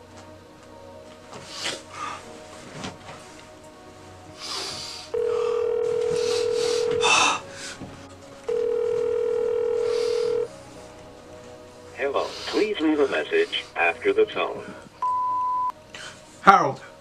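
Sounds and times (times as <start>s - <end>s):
telephone ringback tone: 5.2s - 7.0s, 8.5s - 10.5s, 15.0s - 15.7s.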